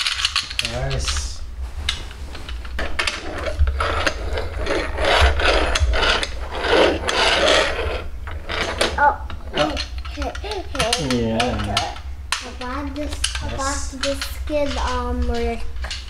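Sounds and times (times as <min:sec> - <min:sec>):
toy cars rolling on wood: 0:02.4 - 0:16.0
toy car motors whirring: 0:03.0 - 0:16.0.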